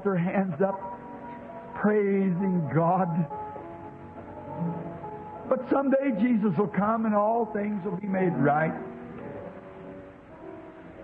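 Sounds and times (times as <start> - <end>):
soft music with held chords: 0.0 - 11.0
man speaking: 5.5 - 8.8.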